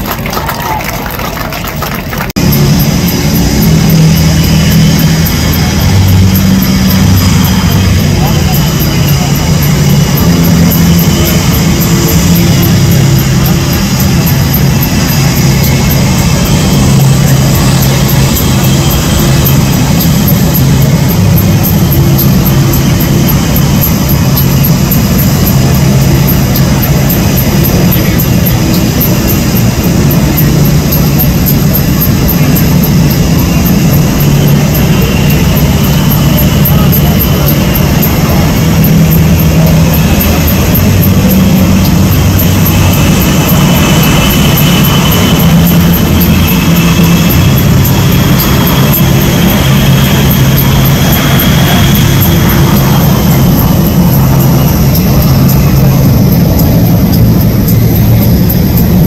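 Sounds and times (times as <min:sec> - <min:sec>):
jet engines whining: 0:00.0 - 0:59.0.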